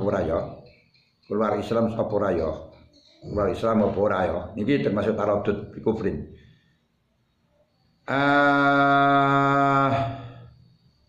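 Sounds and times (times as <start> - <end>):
man's drawn-out vocal: 8.1 - 10.5.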